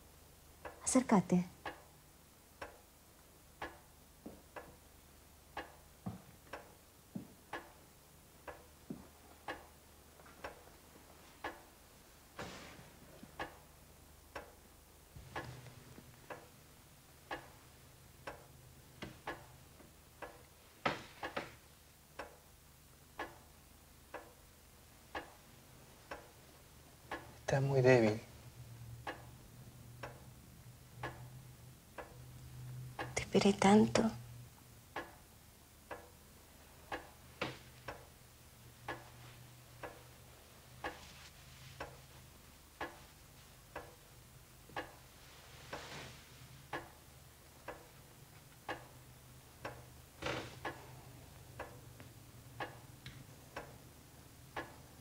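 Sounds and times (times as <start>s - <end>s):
low steady hum: 0.0s - 55.0s
clock ticking: 0.4s - 2.9s, 3.5s - 8.8s, 9.4s - 9.8s, 11.4s - 11.7s, 13.3s - 28.3s, 28.9s - 34.3s, 34.9s - 41.1s, 41.7s - 45.1s, 46.6s - 55.0s.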